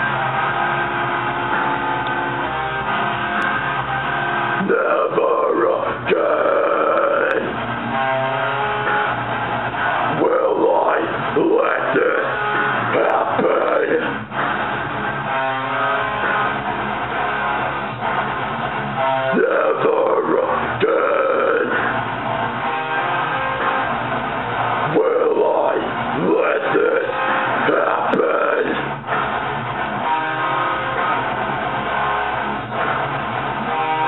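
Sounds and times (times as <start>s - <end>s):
guitar-driven backing track: 0.0s - 34.0s
screamed metal vocals: 4.4s - 7.7s, 9.8s - 14.7s, 19.0s - 22.0s, 24.5s - 29.3s
person screaming vocals: 4.6s - 7.5s, 24.9s - 28.8s.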